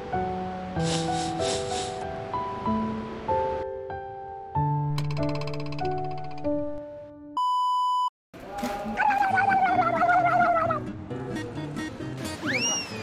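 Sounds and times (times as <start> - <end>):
light music with plucked notes: 8.6 - 13.0.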